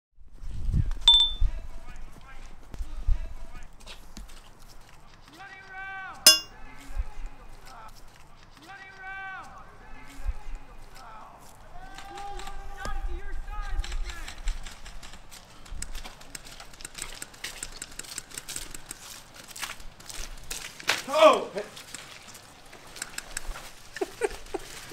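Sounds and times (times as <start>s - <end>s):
footsteps on muddy ground: 3.6s - 5.4s, 7.1s - 11.8s, 15.2s - 24.9s
voices calling out in long shouts: 8.6s - 10.2s, 11.0s - 13.3s.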